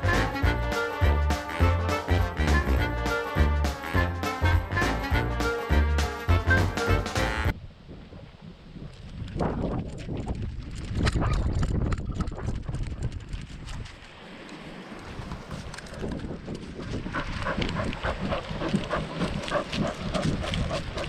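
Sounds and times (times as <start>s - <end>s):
background music: 0.0s - 7.5s
wind on microphone: 7.5s - 21.0s
paw footfalls crunching on gravel: 17.0s - 21.0s.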